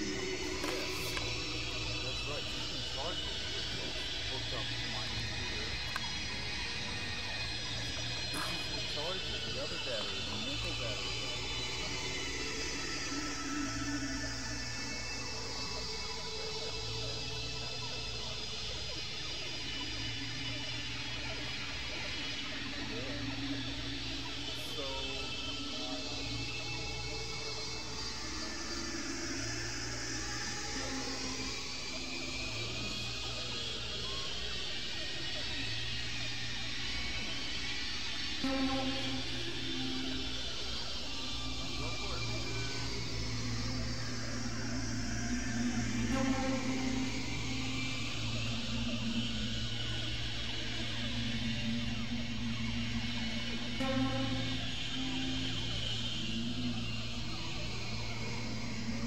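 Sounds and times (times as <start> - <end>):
hissy noise sweeping like siren: 0.0 - 59.0
low synthesizer drone: 0.0 - 59.0.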